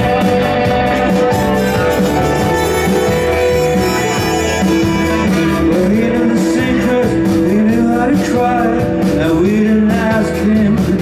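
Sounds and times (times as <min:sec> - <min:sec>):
trumpet: 0:00.0 - 0:07.0
saxophone: 0:00.0 - 0:07.1
electric guitar: 0:00.0 - 0:11.0
upright bass: 0:00.0 - 0:11.0.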